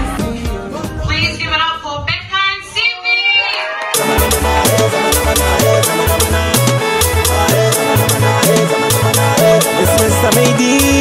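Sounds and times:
drum-heavy dance track: 0.0 - 2.4, 3.9 - 11.0.

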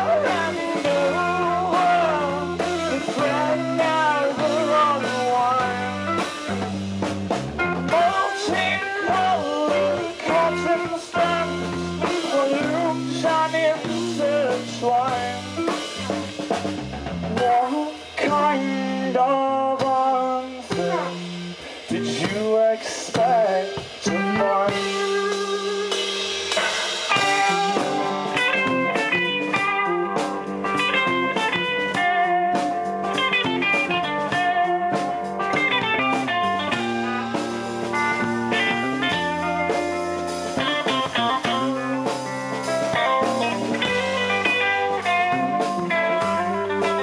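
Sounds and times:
lead guitar bent notes and runs: 0.0 - 17.6, 23.9 - 47.0
live hard rock band: 0.0 - 47.0.

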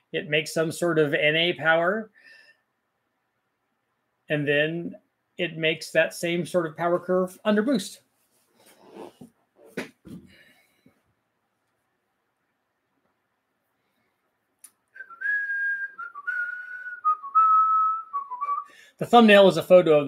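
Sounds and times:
man whistling: 14.9 - 18.8.

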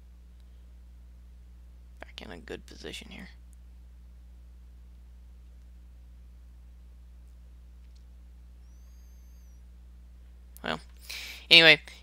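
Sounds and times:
low electrical hum: 0.0 - 12.0
faint click: 7.8 - 9.5
thin high squeak: 8.6 - 9.6.

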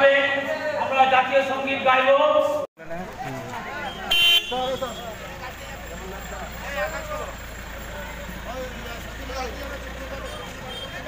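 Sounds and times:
car engine idling: 2.9 - 11.0
distant people talking: 2.9 - 11.0.

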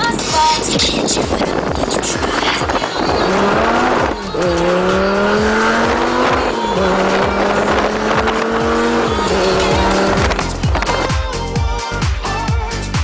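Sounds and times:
dance music with kick drum: 0.0 - 13.0
car engine revving through gears: 1.6 - 11.1.

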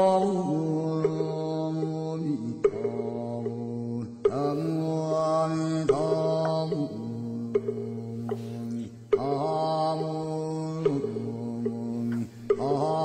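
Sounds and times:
low chanted mantra: 0.0 - 13.0
sharp knock: 5.8 - 13.0.

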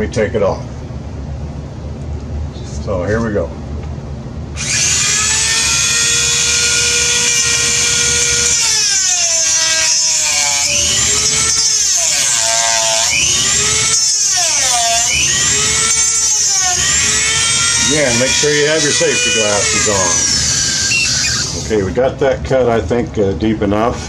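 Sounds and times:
rotary tool cutting metal: 4.6 - 21.8.

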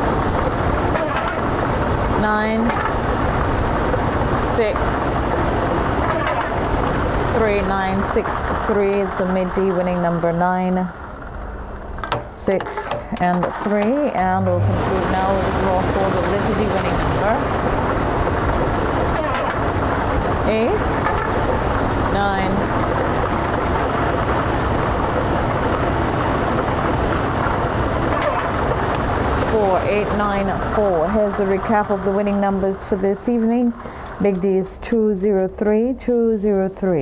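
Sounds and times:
lottery ball machines running: 0.0 - 34.9.

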